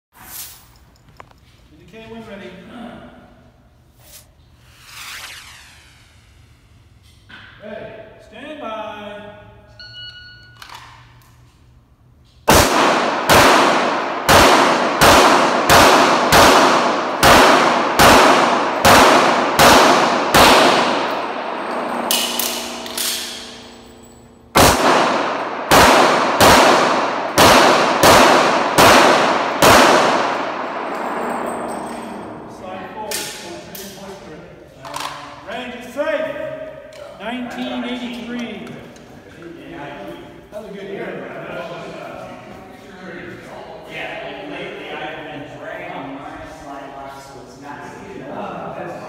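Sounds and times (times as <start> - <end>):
electronic shot timer beep: 9.8 - 10.6
pistol shots echoing: 12.5 - 31.6.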